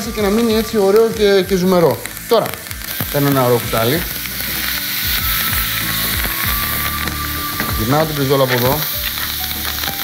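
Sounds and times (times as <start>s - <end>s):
steak sizzling in a pan: 0.0s - 10.0s.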